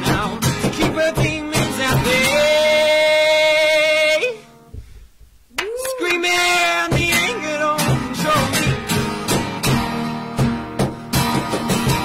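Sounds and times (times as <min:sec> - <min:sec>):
acoustic guitar strumming: 0:00.0 - 0:04.7, 0:06.0 - 0:12.0.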